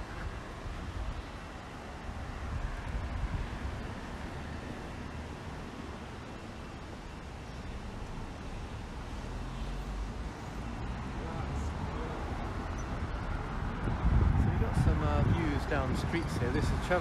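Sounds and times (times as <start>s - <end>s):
wind on microphone: 0.0s - 4.0s, 12.9s - 17.0s
road traffic rumble: 0.0s - 17.0s.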